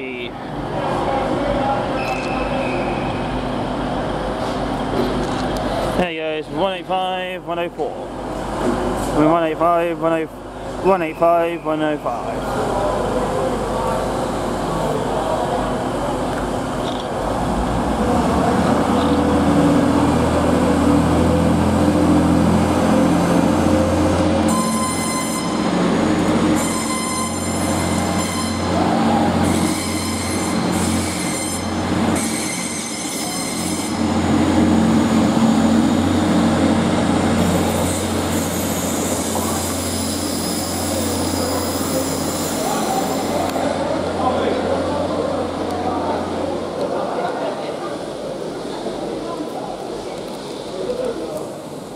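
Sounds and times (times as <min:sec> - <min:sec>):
diesel train engines: 0:00.0 - 0:51.9
train wheels squealing: 0:24.5 - 0:25.6, 0:26.6 - 0:28.7, 0:29.5 - 0:34.0.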